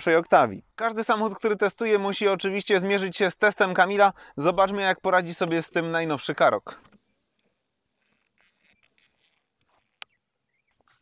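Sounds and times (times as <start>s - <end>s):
faint rustles: 6.7s - 11.0s.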